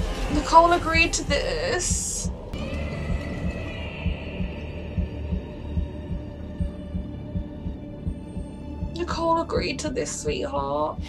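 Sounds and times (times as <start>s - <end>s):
high held drone: 0.0s - 10.0s
heartbeat-style thudding pulse: 0.0s - 11.0s.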